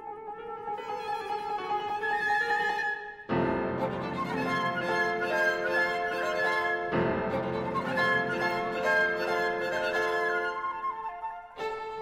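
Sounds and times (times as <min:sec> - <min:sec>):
flute: 0:00.0 - 0:12.0
piano: 0:00.0 - 0:12.0
violin: 0:00.0 - 0:12.0.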